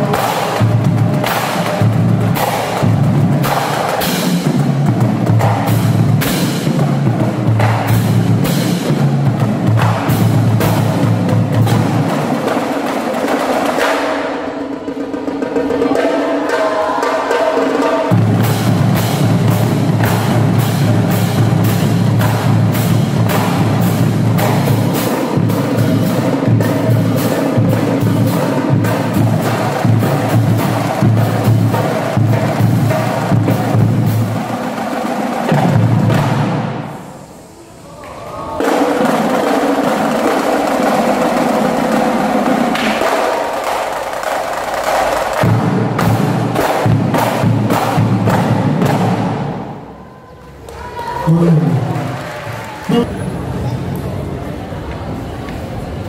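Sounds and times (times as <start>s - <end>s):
marching drumline: 0.0s - 36.9s, 38.6s - 50.0s.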